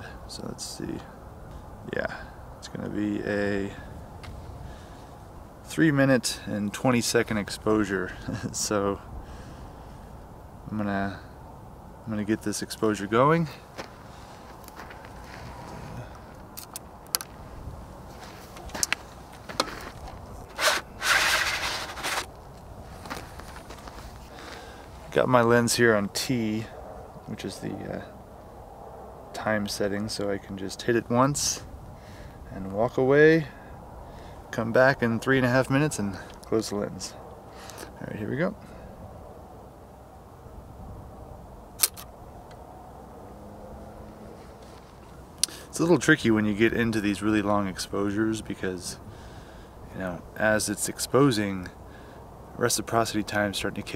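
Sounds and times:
faint low background noise: 0:00.0 - 0:53.9
dark slide scraping out of holder: 0:19.6 - 0:22.3
camera shutter double click: 0:41.8 - 0:42.1.

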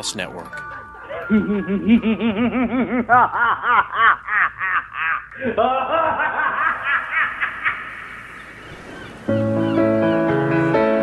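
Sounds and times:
music with held notes: 0:00.0 - 0:02.6, 0:09.3 - 0:11.0
person laughing: 0:01.2 - 0:08.0.

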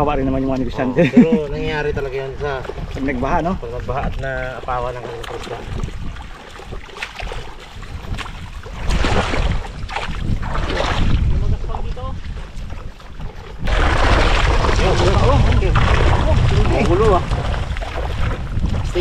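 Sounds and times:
water sloshing and splashing: 0:00.0 - 0:19.0
wind buffeting microphone: 0:00.0 - 0:19.0.

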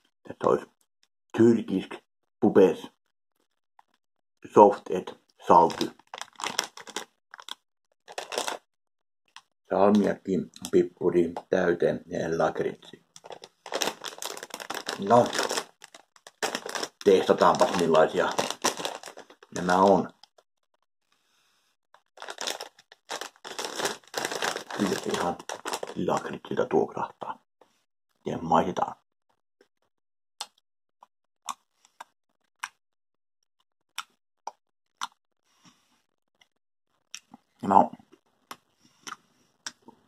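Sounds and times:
plastic bag crinkling: 0:04.8 - 0:08.7, 0:13.2 - 0:20.2, 0:22.2 - 0:26.6.

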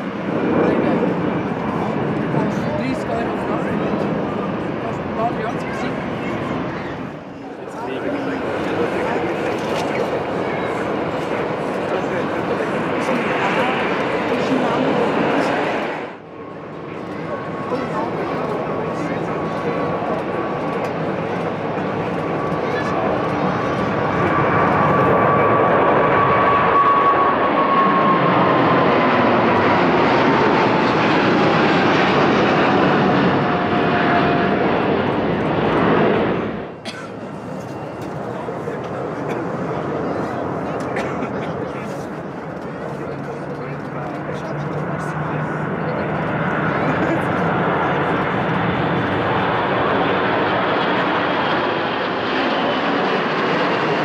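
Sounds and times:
high jet engine whine: 0:00.0 - 0:54.0
jet engines at takeoff power: 0:00.0 - 0:54.0.

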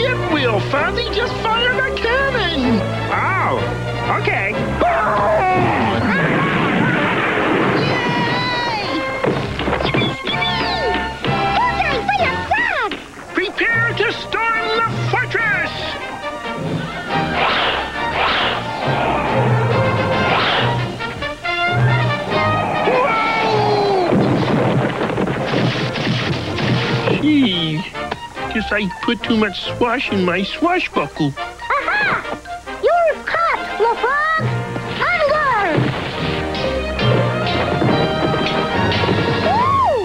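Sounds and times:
background music: 0:00.0 - 0:40.0
music with sliding whistle notes: 0:09.8 - 0:11.2, 0:16.2 - 0:23.8, 0:36.6 - 0:40.0
cartoon crash sound effect: 0:17.1 - 0:20.9
cartoon cannon-shot crash: 0:17.3 - 0:18.8, 0:20.0 - 0:20.8, 0:24.1 - 0:27.2.

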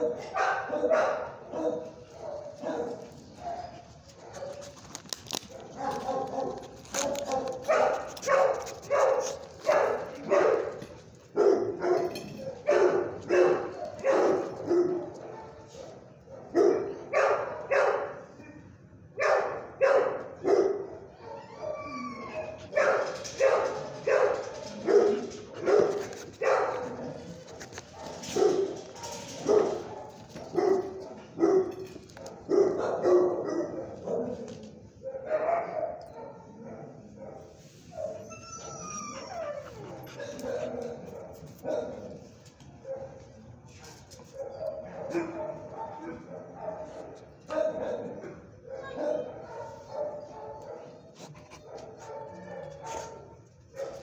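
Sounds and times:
dog barking: 0:00.0 - 0:04.7, 0:05.5 - 0:10.8, 0:11.4 - 0:18.4, 0:19.2 - 0:21.4, 0:22.7 - 0:38.2, 0:39.8 - 0:54.0.

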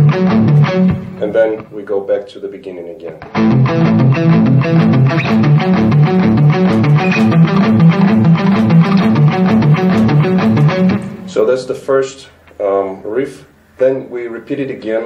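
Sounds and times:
palm-muted electric guitar riff: 0:00.0 - 0:01.7, 0:03.2 - 0:11.3.

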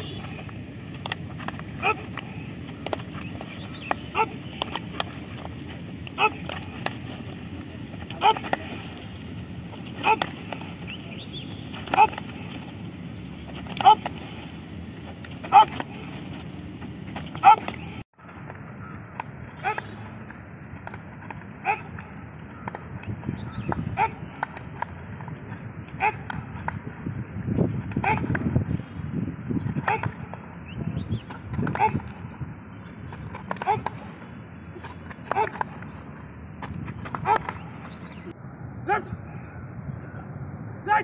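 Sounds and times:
low outdoor background noise: 0:00.0 - 0:41.0
man shouting: 0:01.7 - 0:02.4, 0:04.0 - 0:04.5, 0:06.1 - 0:06.7, 0:08.1 - 0:08.9, 0:10.0 - 0:10.6, 0:11.8 - 0:12.4, 0:13.7 - 0:14.2, 0:15.4 - 0:16.0, 0:17.4 - 0:17.8, 0:21.6 - 0:22.0, 0:23.9 - 0:24.3, 0:25.9 - 0:26.4, 0:28.0 - 0:28.3, 0:29.8 - 0:30.2, 0:31.7 - 0:32.1, 0:33.5 - 0:34.0, 0:35.3 - 0:35.6, 0:37.2 - 0:37.6, 0:38.8 - 0:39.2.

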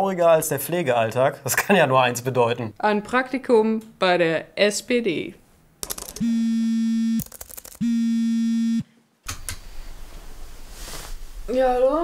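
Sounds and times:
smartphone vibrating: 0:06.2 - 0:08.9.

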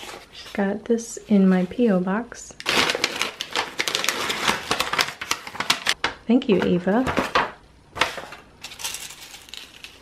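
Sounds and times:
paper wrapping crinkling: 0:02.6 - 0:06.0, 0:08.1 - 0:10.0.

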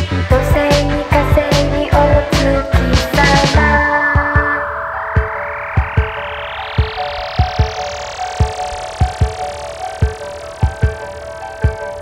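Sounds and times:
held chords: 0:00.4 - 0:12.0
hiss rising in pitch: 0:03.1 - 0:12.0.

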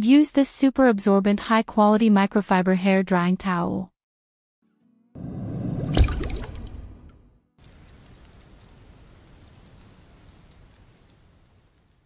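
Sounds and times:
faint rain-like hiss: 0:07.6 - 0:12.0
light scattered crackle: 0:07.6 - 0:12.0.

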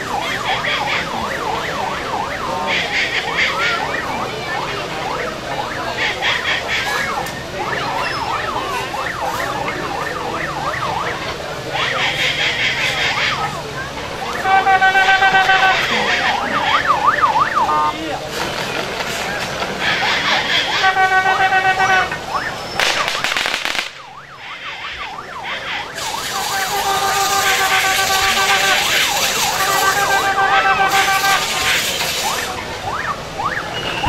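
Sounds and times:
crowd noise: 0:00.0 - 0:34.0
electronic horn warbling: 0:14.2 - 0:18.1, 0:19.8 - 0:22.5, 0:24.5 - 0:32.6.

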